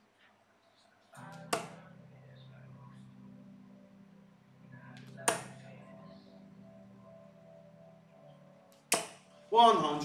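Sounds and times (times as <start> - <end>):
dart hitting dartboard: 1.3 - 1.8, 5.3 - 5.6, 8.9 - 9.2.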